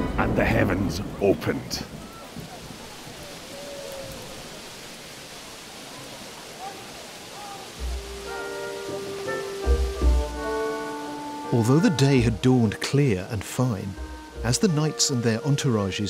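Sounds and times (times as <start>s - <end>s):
heavy rain hissing: 0.0s - 16.0s
background music with held notes: 7.8s - 16.0s.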